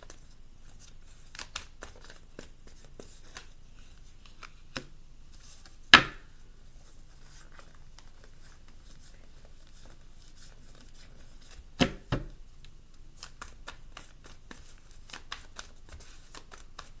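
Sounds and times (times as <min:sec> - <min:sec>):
cards being shuffled: 0:00.0 - 0:03.5, 0:13.2 - 0:17.0.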